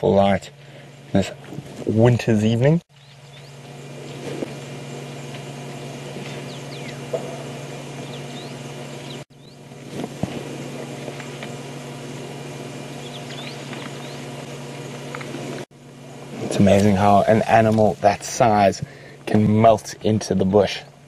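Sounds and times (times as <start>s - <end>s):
small birds chirping: 2.9s - 9.7s, 12.8s - 15.4s
vehicle engine idling: 2.9s - 20.8s.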